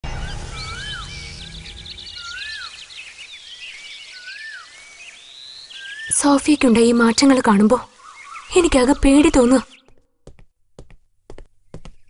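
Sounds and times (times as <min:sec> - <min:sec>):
low rumble: 0:00.0 - 0:03.8
high bird twittering: 0:00.1 - 0:10.0
bird whistled call: 0:00.2 - 0:06.6.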